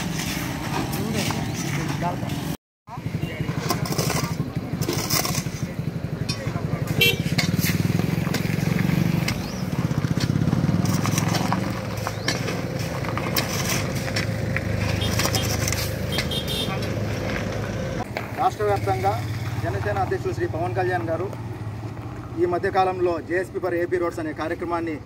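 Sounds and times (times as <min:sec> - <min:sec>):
shovels scraping gravel: 0:00.0 - 0:02.6, 0:03.5 - 0:17.7
vehicle engine rumbling: 0:00.0 - 0:25.0
people talking: 0:00.9 - 0:07.2, 0:18.4 - 0:21.3.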